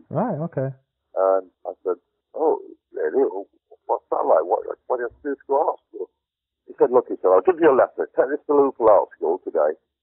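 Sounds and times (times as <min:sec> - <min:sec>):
man talking: 0:00.0 - 0:06.1, 0:06.7 - 0:09.8.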